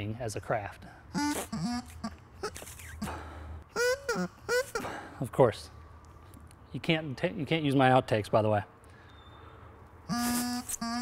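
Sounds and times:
bagpipe practice chanter notes: 1.2s - 2.6s, 10.1s - 11.0s.

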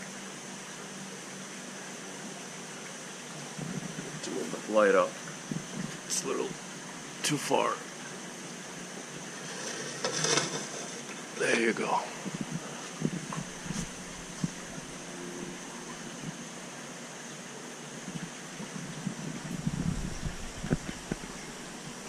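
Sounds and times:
background hiss: 0.0s - 22.0s
low rumbling: 12.1s - 16.6s, 18.0s - 21.9s.

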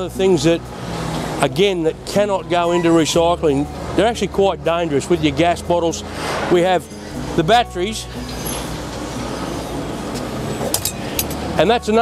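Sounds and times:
industrial yard background noise: 0.0s - 12.0s.

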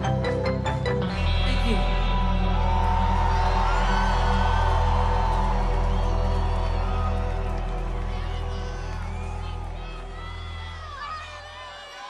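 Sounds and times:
held low bass chord: 0.0s - 10.7s
crowd whooping: 2.0s - 12.0s.

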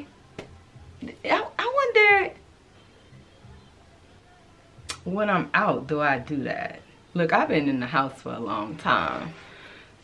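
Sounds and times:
woman speaking: 1.0s - 2.4s, 4.9s - 9.4s
lip smack: 4.8s - 5.1s.

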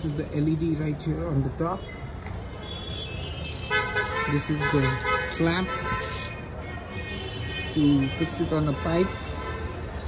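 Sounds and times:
vehicle horn: 2.7s - 9.8s.

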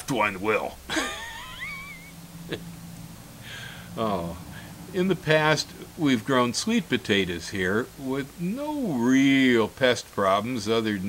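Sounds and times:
faint low hum: 0.0s - 11.0s
man laughing: 0.9s - 2.7s.

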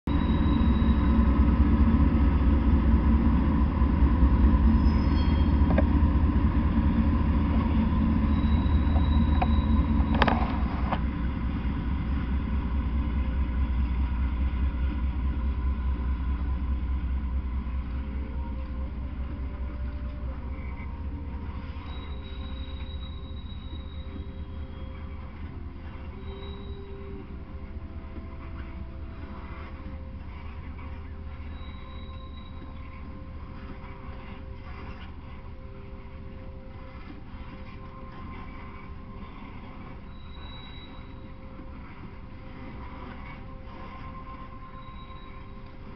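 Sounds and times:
diesel locomotives rumbling: 0.0s - 45.9s
freight cars rolling on rails: 0.0s - 45.9s.

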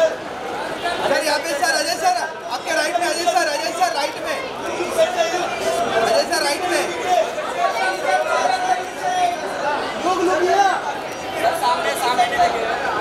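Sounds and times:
crowd chattering and calling out: 0.0s - 13.0s.

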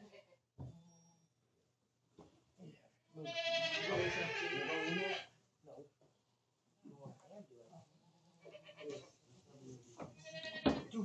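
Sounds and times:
goat bleating: 3.2s - 5.4s, 8.4s - 9.2s, 10.1s - 10.9s.

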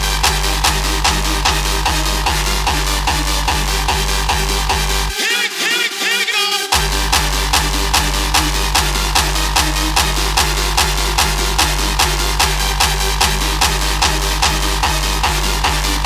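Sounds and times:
heavy kick drum: 0.0s - 5.1s, 6.7s - 16.0s
sustained synth lines: 0.0s - 5.2s, 6.7s - 16.0s.

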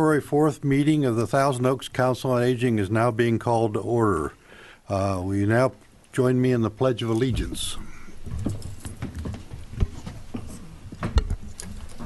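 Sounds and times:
feet shuffling: 7.2s - 12.0s.

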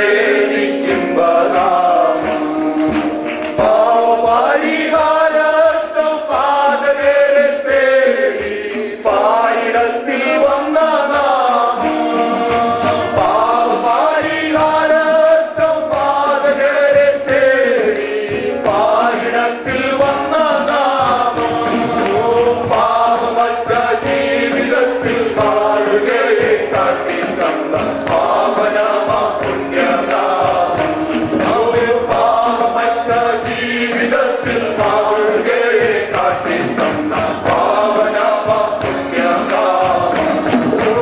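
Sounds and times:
keyboard accompaniment with beat: 0.0s - 41.0s
men singing a worship song: 0.0s - 41.0s.

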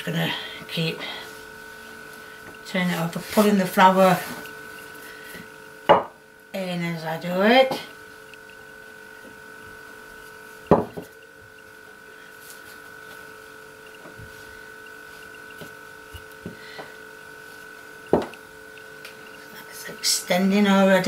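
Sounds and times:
steady background hum: 0.0s - 21.0s
rolling pin knocking on wooden table: 5.9s - 6.2s, 10.7s - 11.1s, 18.1s - 18.3s.

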